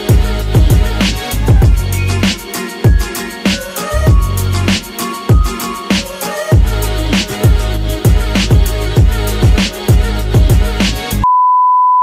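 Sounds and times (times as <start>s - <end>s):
outro music with steady beat: 0.0s - 11.3s
steady test-tone beep: 11.2s - 12.0s.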